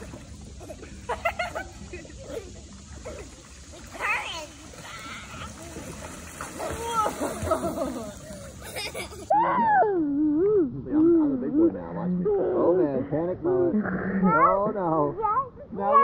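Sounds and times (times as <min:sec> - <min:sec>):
water splashing: 0:00.0 - 0:09.3.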